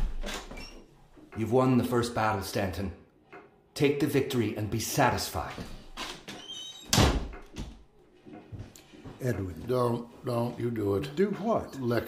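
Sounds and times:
door shutting: 0.0 - 1.0, 5.6 - 7.8.

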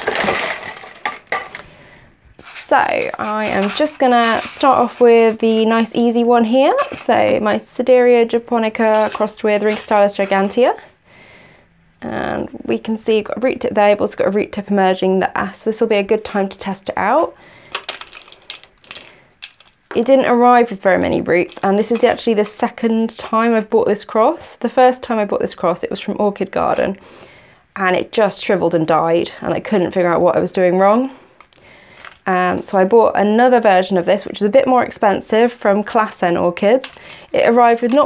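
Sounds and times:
pebbles rattling in plastic cup: 0.0 - 1.6, 2.4 - 6.0, 8.7 - 10.6, 17.7 - 20.2, 32.0 - 32.3, 36.8 - 38.0
plastic pot crackling and clicking: 17.7 - 20.1, 36.8 - 38.0.

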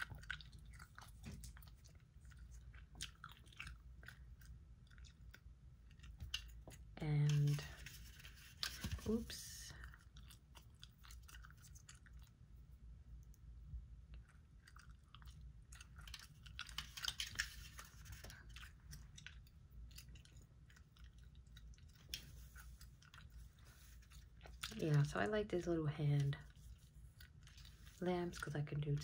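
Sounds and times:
gum chewing mouth clicks: 0.0 - 6.9.

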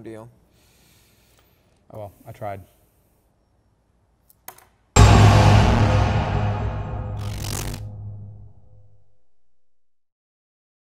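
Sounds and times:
hit with deep boom: 5.0 - 9.5.

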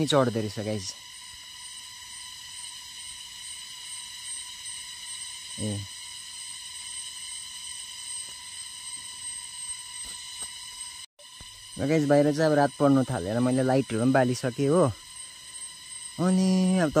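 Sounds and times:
high-pitched whine: 0.0 - 17.0.

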